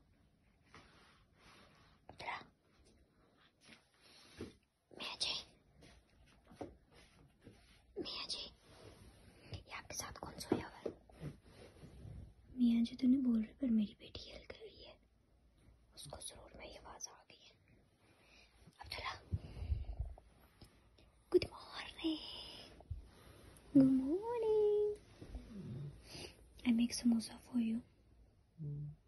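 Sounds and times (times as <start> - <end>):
woman whispering: 2.1 - 2.8, 4.9 - 5.6, 8.0 - 8.7, 9.4 - 11.0, 12.6 - 15.1, 15.9 - 17.6, 18.7 - 19.4, 21.2 - 22.9, 23.6 - 27.9.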